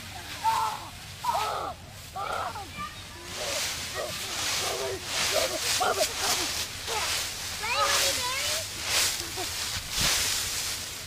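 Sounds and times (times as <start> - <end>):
dry leaves rustling: 0.0 - 11.0
children squealing and shouting: 0.4 - 9.0.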